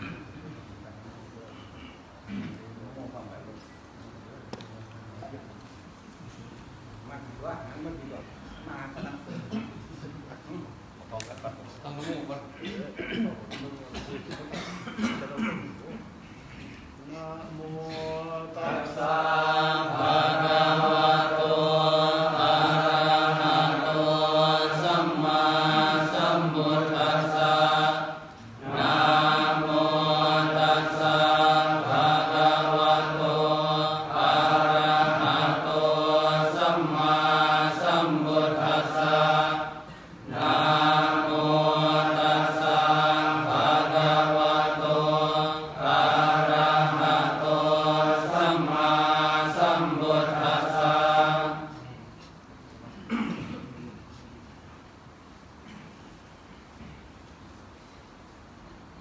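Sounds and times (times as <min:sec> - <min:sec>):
monks chanting in unison: 0:17.1 - 0:52.0.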